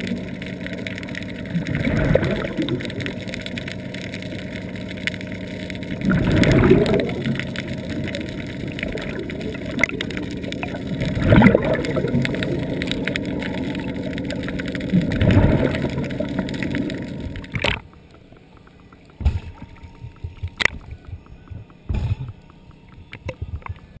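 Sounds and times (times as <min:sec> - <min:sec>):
rush of water underwater: 0:00.0 - 0:24.0
underwater clicks and crackles: 0:00.0 - 0:24.0.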